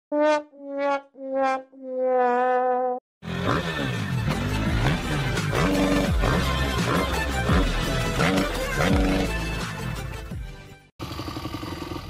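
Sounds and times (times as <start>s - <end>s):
loud intro music: 3.2s - 10.8s.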